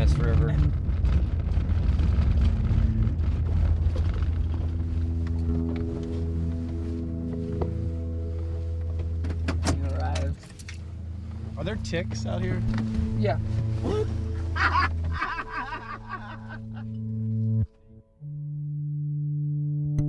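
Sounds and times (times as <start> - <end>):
truck engine rumble from cab: 0.0 - 17.6
background music sustained notes: 4.1 - 20.0.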